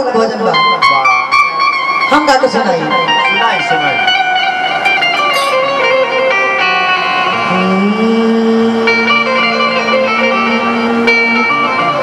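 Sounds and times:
held notes: 0.0 - 12.0
plucked string melody: 0.0 - 12.0.

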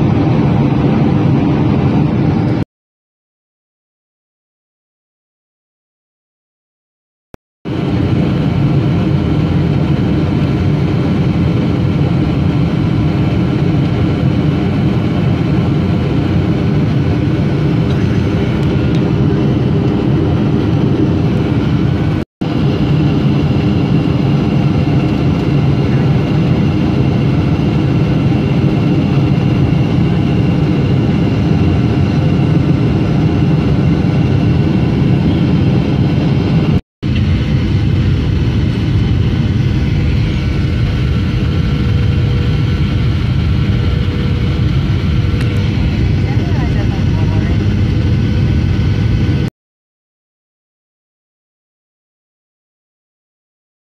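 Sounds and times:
jet engine and airflow rumble: 0.0 - 2.7, 7.7 - 49.5
faint steady whines: 7.7 - 49.5.

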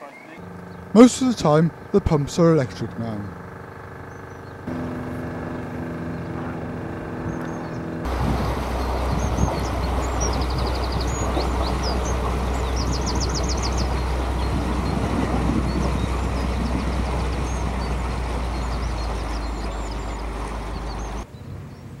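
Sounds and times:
small birds singing: 0.0 - 22.0
steady low hum: 0.4 - 21.2
rushing wind-like noise: 4.7 - 21.2.

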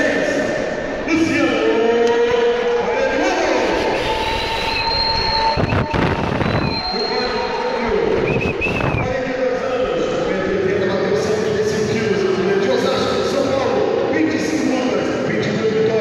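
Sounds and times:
voices calling out echoing: 6.7 - 16.0.

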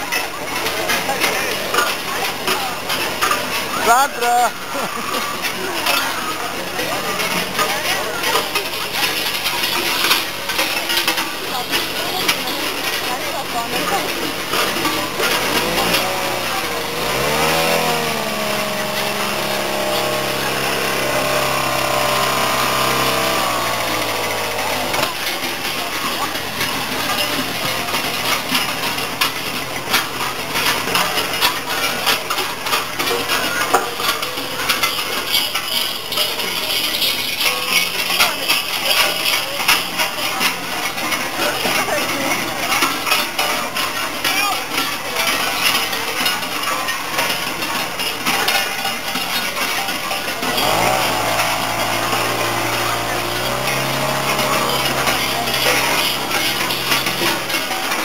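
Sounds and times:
large metal bells clanging: 0.0 - 58.0.

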